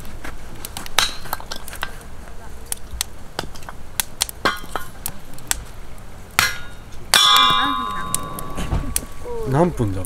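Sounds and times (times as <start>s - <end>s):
hammer striking metal wedge: 6.4s - 8.7s.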